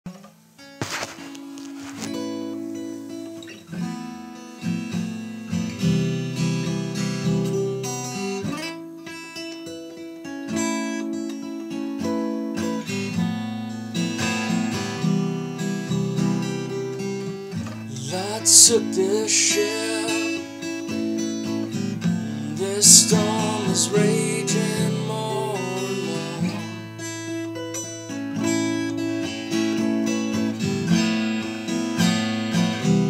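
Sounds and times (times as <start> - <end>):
acoustic guitar chords: 0.1 - 33.0.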